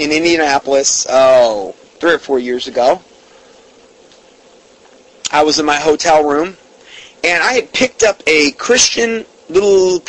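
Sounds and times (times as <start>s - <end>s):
background hiss: 0.0s - 10.0s
faint hum: 0.0s - 10.0s.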